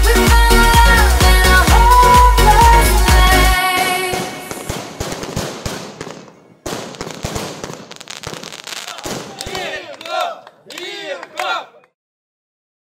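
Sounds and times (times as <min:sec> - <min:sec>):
dance music: 0:00.0 - 0:04.5
fireworks crackling and popping: 0:03.6 - 0:10.0.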